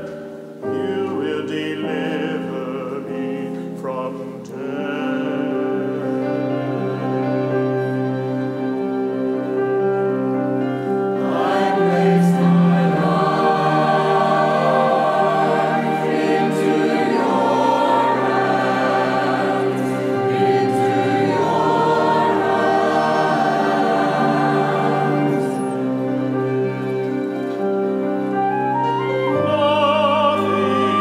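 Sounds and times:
church choir singing: 0:00.0 - 0:31.0
held accompaniment chords: 0:00.0 - 0:31.0.

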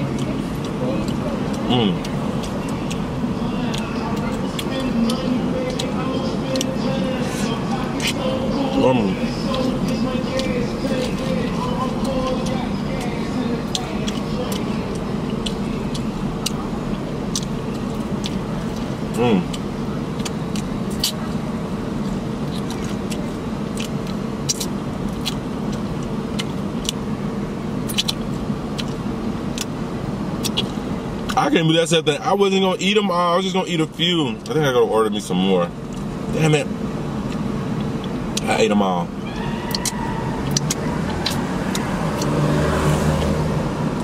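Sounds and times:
car and traffic hum: 0:00.0 - 0:44.0
crunching fried chicken: 0:00.1 - 0:27.1, 0:27.8 - 0:29.8, 0:30.4 - 0:31.4, 0:39.3 - 0:43.5
person humming: 0:01.7 - 0:02.0.

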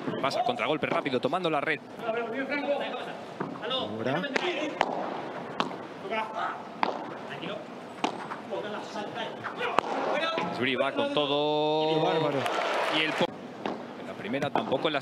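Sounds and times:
ball bouncing on court: 0:04.3 - 0:05.8, 0:06.8 - 0:07.2, 0:08.0 - 0:08.4, 0:13.6 - 0:13.9
ball struck by paddles: 0:04.3 - 0:05.8, 0:06.8 - 0:07.2, 0:08.0 - 0:08.4, 0:09.4 - 0:10.6, 0:13.6 - 0:14.8
voices: 0:08.4 - 0:13.3.

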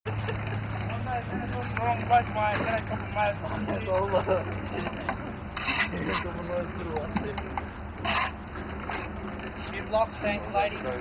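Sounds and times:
people talking: 0:00.9 - 0:05.1, 0:05.9 - 0:07.7, 0:09.6 - 0:11.0.

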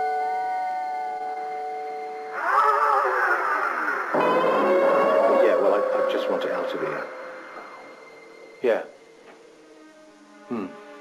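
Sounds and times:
electric guitar chords: 0:04.2 - 0:07.9.

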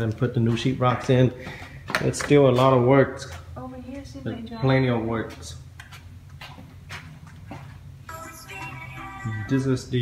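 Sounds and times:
footsteps on concrete floor: 0:00.0 - 0:09.1.

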